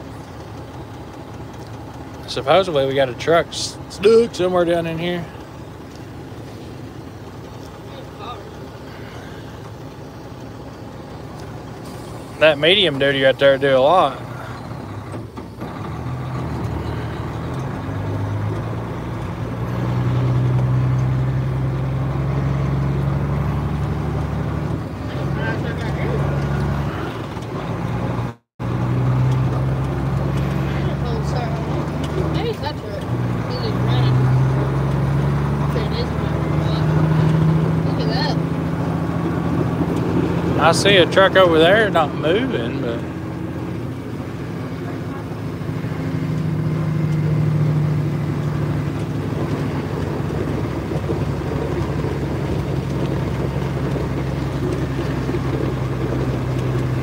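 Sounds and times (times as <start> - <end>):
truck diesel engine running: 0.0 - 57.0.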